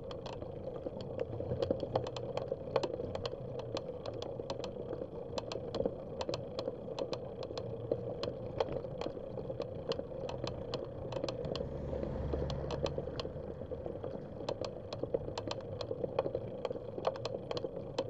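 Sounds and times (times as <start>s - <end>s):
bicycle ticks and rattles: 0.0s - 18.0s
bicycle road and wind noise: 6.3s - 17.7s
low rumble: 11.3s - 14.5s.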